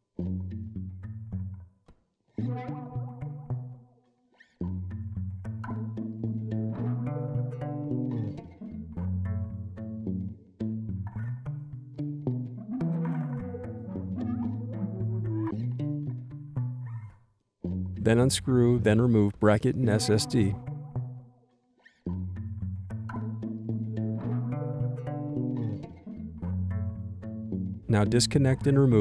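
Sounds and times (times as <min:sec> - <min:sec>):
plucked bass-heavy music: 0:02.4 - 0:03.8, 0:04.6 - 0:17.1, 0:17.7 - 0:21.3, 0:22.1 - 0:29.0.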